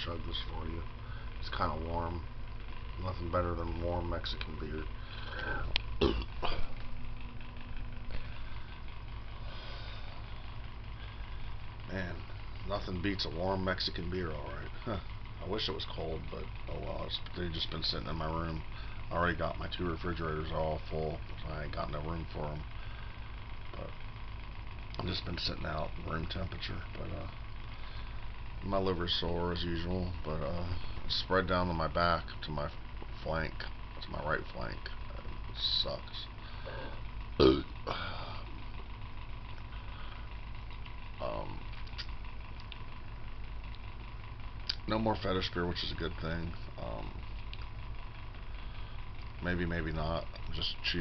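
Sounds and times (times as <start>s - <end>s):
electric fan humming: 0.0s - 51.0s.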